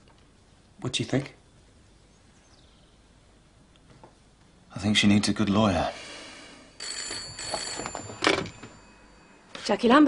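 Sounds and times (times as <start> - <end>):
telephone bell ringing: 6.8 - 9.9.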